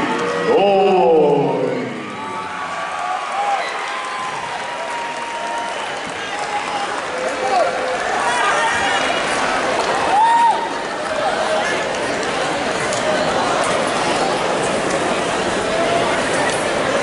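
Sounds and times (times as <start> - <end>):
crowd hum: 0.0 - 17.0
crowd applauding and cheering: 1.7 - 17.0.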